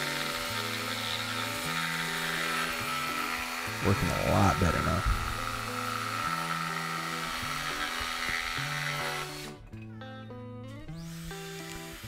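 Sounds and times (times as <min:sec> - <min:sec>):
jigsaw cutting wood: 0:00.0 - 0:09.6, 0:10.9 - 0:12.0
background music: 0:00.0 - 0:12.0.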